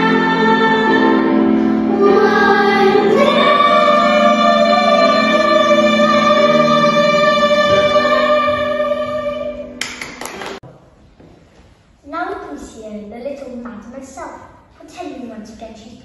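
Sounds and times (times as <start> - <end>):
children singing together: 0.0 - 9.8.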